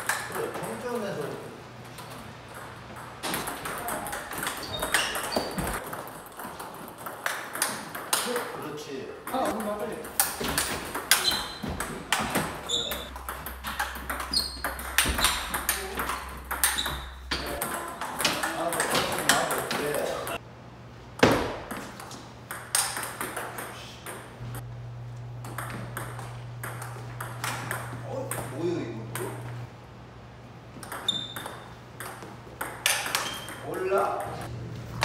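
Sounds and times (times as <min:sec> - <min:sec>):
ball bouncing on table: 0:02.0 - 0:08.6, 0:09.3 - 0:20.4, 0:25.4 - 0:28.5, 0:30.8 - 0:33.6
ping pong ball clicking off bats: 0:02.0 - 0:20.4, 0:21.7 - 0:24.3, 0:25.4 - 0:29.5, 0:30.8 - 0:34.5.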